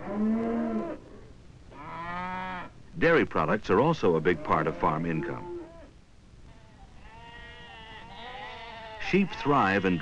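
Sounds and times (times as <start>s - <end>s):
sheep bleating: 4.1s - 5.9s, 6.5s - 10.0s.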